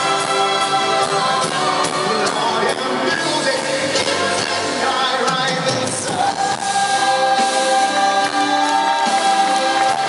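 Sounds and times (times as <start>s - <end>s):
band playing: 0.0s - 10.0s
man singing: 0.0s - 10.0s.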